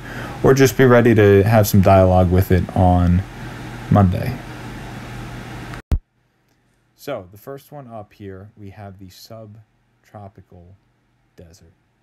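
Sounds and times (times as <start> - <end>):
room noise hiss and hum: 0.0 - 12.0.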